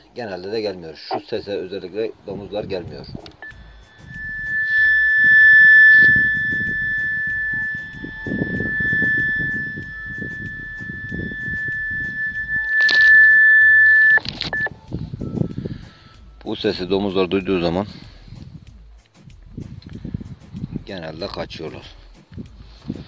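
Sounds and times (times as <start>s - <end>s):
low rumbling: 3.4s - 14.7s
high-pitched electronic beep tone: 3.4s - 14.8s.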